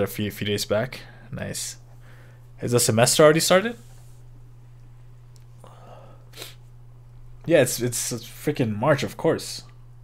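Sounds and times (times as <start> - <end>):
low electrical hum: 0.0 - 10.0
man breathing: 1.9 - 2.6, 5.6 - 6.6.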